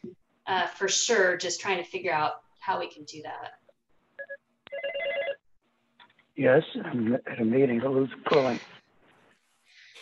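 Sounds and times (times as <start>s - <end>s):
fast-pulsing electronic phone ring: 4.2s - 5.4s.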